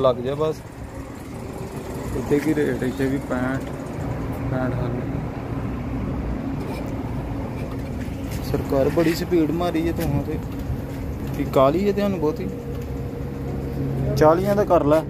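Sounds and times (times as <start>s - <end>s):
fuel pump humming: 0.0s - 14.9s.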